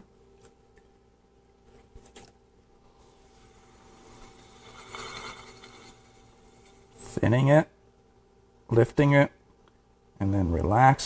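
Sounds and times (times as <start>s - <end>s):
potter's wheel humming: 3.0s - 7.6s.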